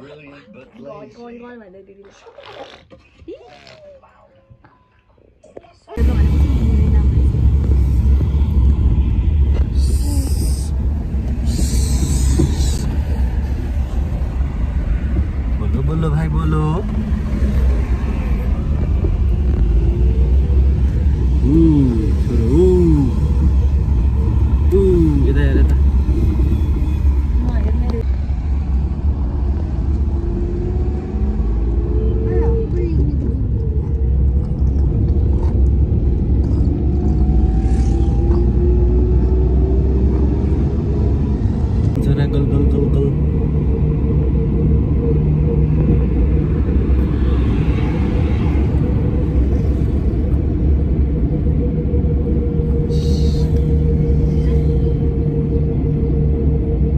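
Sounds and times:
car cabin road rumble: 0:06.0 - 0:56.9.

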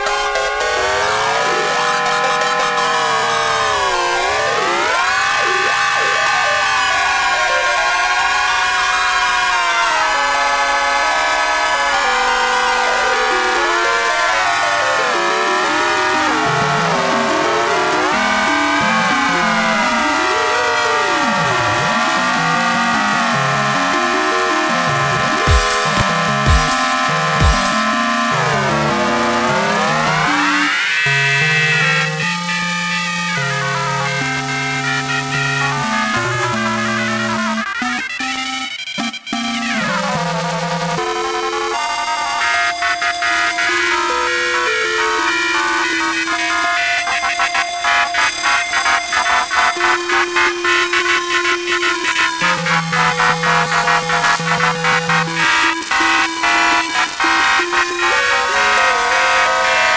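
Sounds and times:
electronic horn-like drone: 0:00.0 - 0:59.9
rising synth line: 0:00.8 - 0:08.9, 0:12.0 - 0:32.2
stepping bass line: 0:23.3 - 0:30.3.

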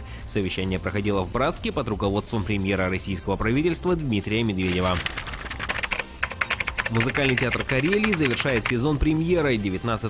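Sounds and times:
rapid keyboard typing clicks: 0:04.6 - 0:09.0.

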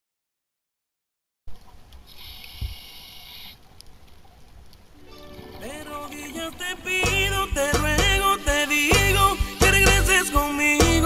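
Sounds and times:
hiss: 0:02.1 - 0:03.6.

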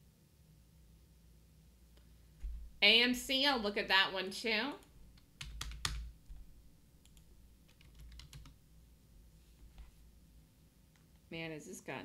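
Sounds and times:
computer keyboard typing: 0:05.2 - 0:08.6.

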